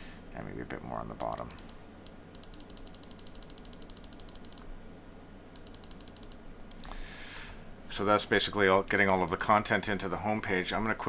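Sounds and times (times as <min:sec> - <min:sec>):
mouse scroll wheel clicking: 0:01.2 - 0:04.7, 0:05.6 - 0:06.9.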